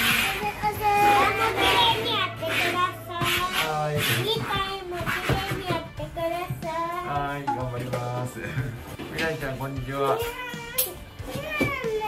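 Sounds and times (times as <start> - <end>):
light background music: 0.0 - 12.0
child singing: 0.1 - 7.4.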